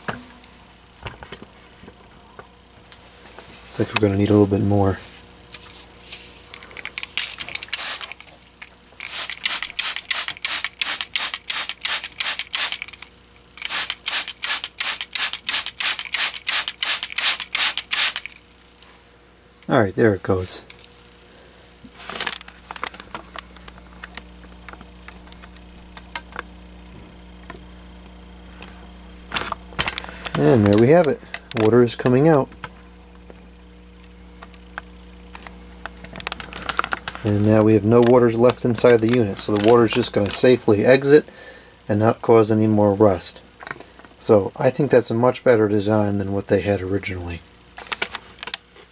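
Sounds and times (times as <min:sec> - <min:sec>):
low electrical hum: 0:00.0 - 0:48.9
spray bottle squirting: 0:07.1 - 0:08.2, 0:09.0 - 0:13.0, 0:13.6 - 0:18.4.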